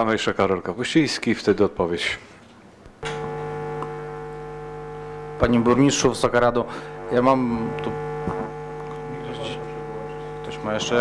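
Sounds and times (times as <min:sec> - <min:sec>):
microphone electrical hum and buzz: 0:02.8 - 0:11.0.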